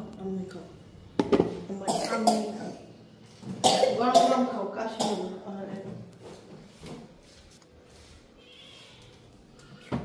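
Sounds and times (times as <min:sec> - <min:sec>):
person coughing: 0:01.8 - 0:02.8, 0:03.6 - 0:05.4.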